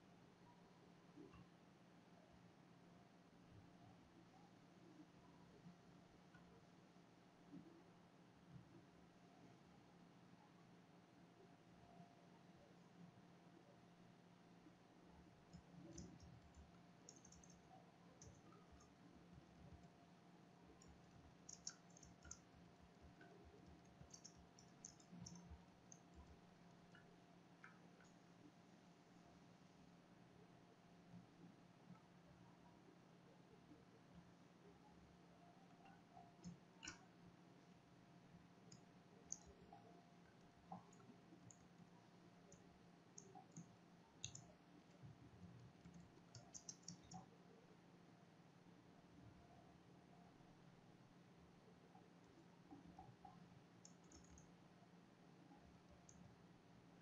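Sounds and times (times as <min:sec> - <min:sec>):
low steady hum: 0:00.0 - 0:57.0
computer keyboard clicks: 0:15.5 - 0:18.9, 0:20.8 - 0:22.4, 0:23.0 - 0:26.3, 0:43.2 - 0:44.5, 0:45.5 - 0:47.3, 0:53.8 - 0:54.4.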